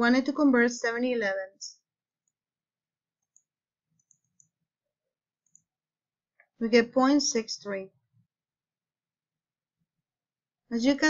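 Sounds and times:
faint mouse clicks: 3.2 - 4.6, 5.4 - 5.8.

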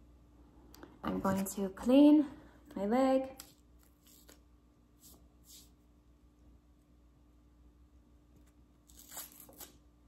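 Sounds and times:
paper packet tearing: 8.8 - 9.9.

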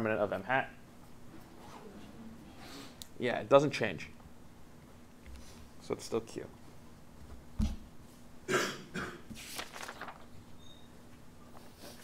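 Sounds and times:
person coughing: 8.5 - 9.3.

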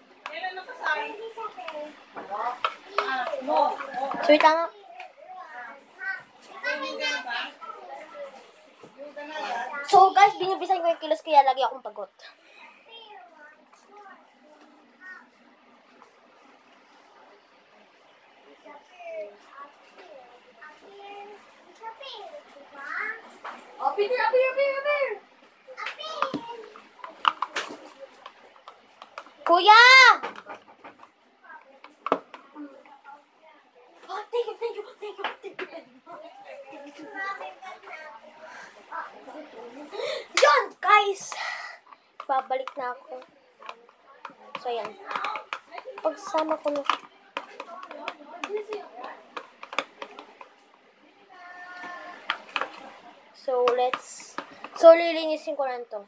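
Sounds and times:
child talking: 1.0 - 2.1, 2.8 - 8.4, 9.2 - 12.1, 12.7 - 15.4, 18.6 - 24.7, 25.7 - 26.8, 29.4 - 30.3, 34.0 - 43.1, 53.4 - 56.0
soft background voices: 12.0 - 55.5
plastic tub clicks and knocks: 42.2 - 50.5, 52.2 - 52.8.

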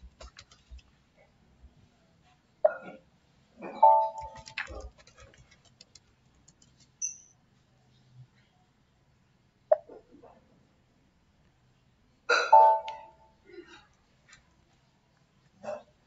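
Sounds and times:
keyboard and mouse clicks: 0.0 - 0.9, 3.8 - 7.3, 12.8 - 13.1
person hiccup-like throat sounds: 2.6 - 3.0, 12.3 - 12.8.

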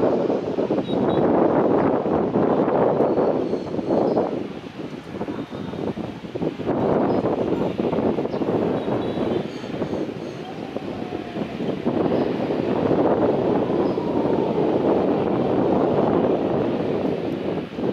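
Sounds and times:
wind buffeting microphone: 0.0 - 17.9
jet engines roaring: 7.5 - 17.9.

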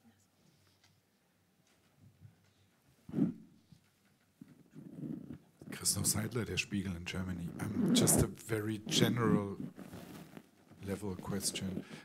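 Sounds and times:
person speaking into a microphone: 5.6 - 9.7, 10.8 - 12.0.

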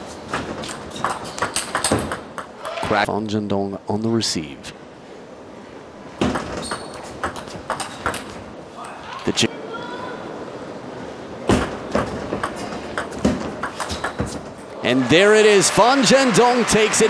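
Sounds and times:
table tennis ball hits: 0.3 - 2.5, 6.2 - 8.3.

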